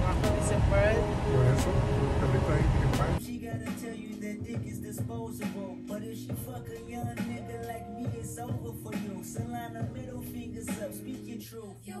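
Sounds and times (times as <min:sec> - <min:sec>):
car engine rumble: 0:00.0 - 0:03.2
person talking: 0:00.0 - 0:03.2
rap music: 0:00.0 - 0:12.0.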